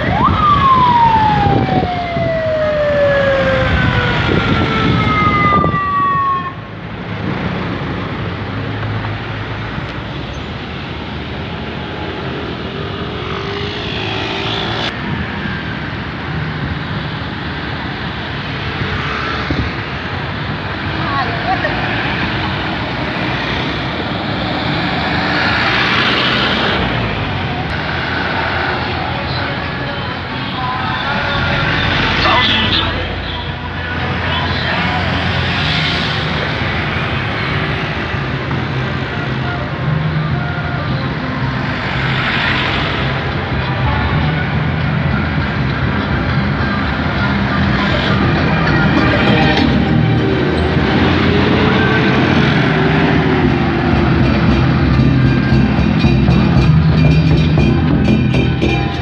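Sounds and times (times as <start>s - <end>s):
siren sweeping down: 0.0s - 6.7s, 47.0s - 55.2s
traffic noise: 0.0s - 59.0s
truck and scooter engines: 0.0s - 59.0s.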